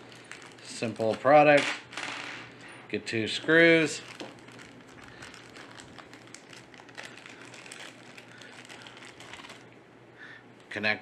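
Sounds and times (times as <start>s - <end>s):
plastic zip bag crinkling: 0.0s - 2.3s, 3.5s - 9.8s.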